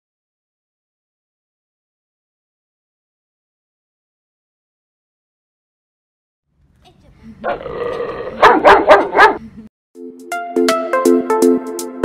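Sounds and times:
large dog barking: 7.4s - 9.4s.

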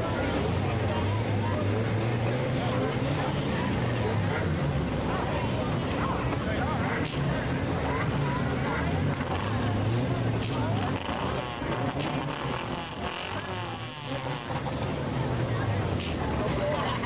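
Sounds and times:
people talking: 0.0s - 17.0s
race car engines droning: 0.0s - 17.0s.

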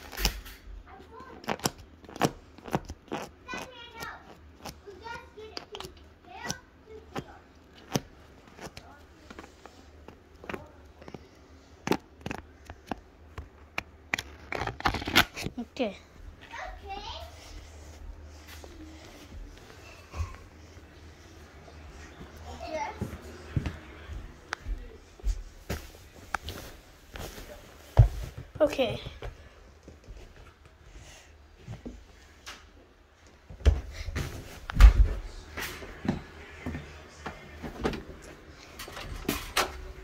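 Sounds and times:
book pages flipping: 0.0s - 15.6s
footsteps: 15.4s - 32.6s, 33.2s - 39.5s.

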